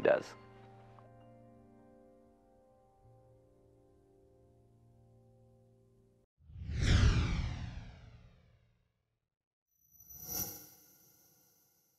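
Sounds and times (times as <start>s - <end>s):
whoosh sound effect: 6.6s - 8.5s.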